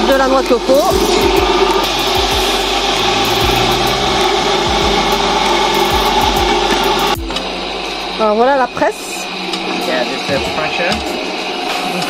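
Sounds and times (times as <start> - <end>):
electric coconut grater whirring: 0.0 - 12.0.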